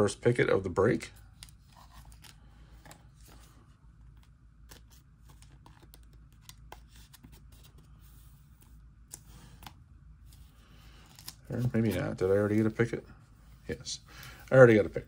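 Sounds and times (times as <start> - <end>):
low steady hum: 0.0 - 15.0
trading cards clicking and rustling: 1.2 - 7.9.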